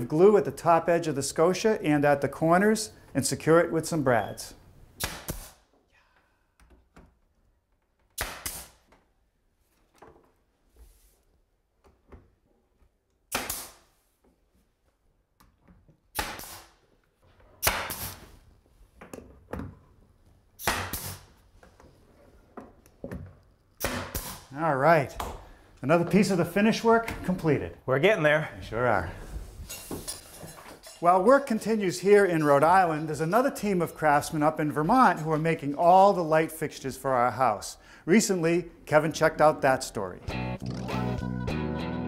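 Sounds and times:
pneumatic nailer firing: 0:05.0 - 0:05.7, 0:08.1 - 0:08.9, 0:13.3 - 0:13.9, 0:16.1 - 0:16.8, 0:17.6 - 0:18.2, 0:20.6 - 0:21.4, 0:23.8 - 0:24.5.

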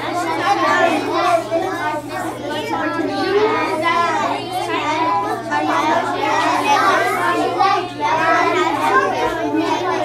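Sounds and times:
children babbling: 0:00.0 - 0:10.0.

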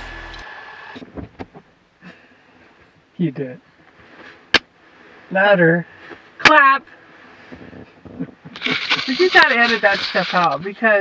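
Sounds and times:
aircraft engine running: 0:00.0 - 0:00.4.

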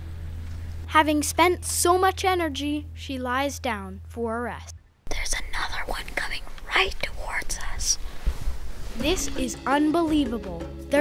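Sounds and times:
boy whispering: 0:05.1 - 0:08.0.

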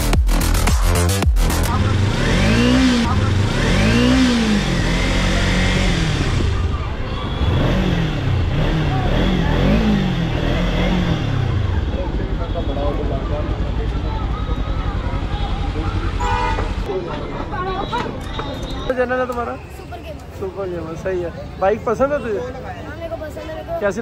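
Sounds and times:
motorcycle engine revving: 0:00.0 - 0:16.9.

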